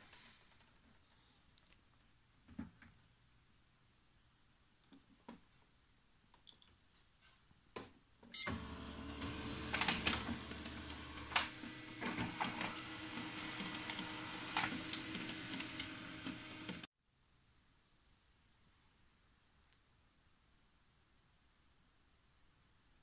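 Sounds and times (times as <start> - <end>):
laser printer copying hum: 8.4 - 16.9
printer mechanism clicks and clacks: 8.5 - 16.9.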